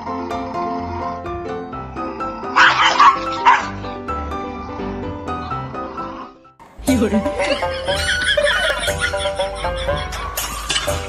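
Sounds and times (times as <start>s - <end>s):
background music: 0.0s - 11.0s
small dog barking: 2.6s - 3.8s.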